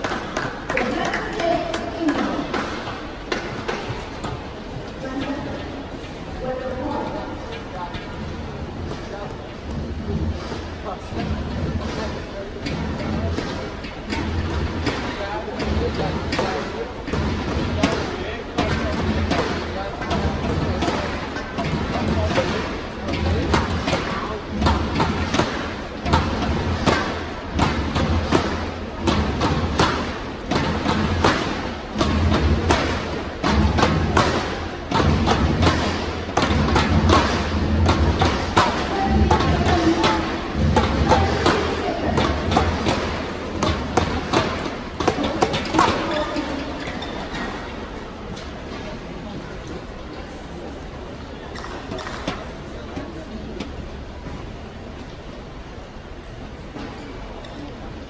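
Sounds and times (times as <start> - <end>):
sharp thumps and claps: 0.0 - 4.6
voices: 0.0 - 54.0.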